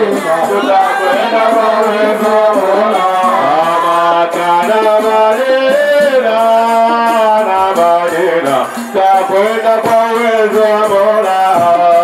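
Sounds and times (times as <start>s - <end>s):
light percussion: 0.0s - 12.0s
men singing together: 0.0s - 12.0s.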